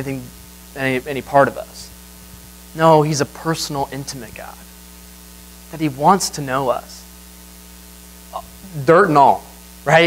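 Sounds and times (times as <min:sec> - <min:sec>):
man speaking: 0:00.0 - 0:02.0, 0:02.7 - 0:04.7, 0:05.7 - 0:07.1, 0:08.3 - 0:10.0
electrical mains hum: 0:00.0 - 0:10.0.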